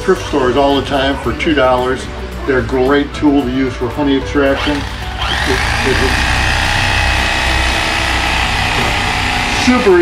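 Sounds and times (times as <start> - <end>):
electric carving knife sawing: 4.5 - 10.0.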